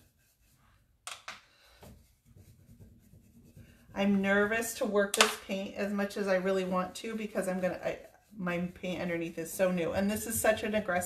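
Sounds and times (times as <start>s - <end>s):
paintbrush scrubbing wood: 0.0s - 1.0s, 1.8s - 11.0s.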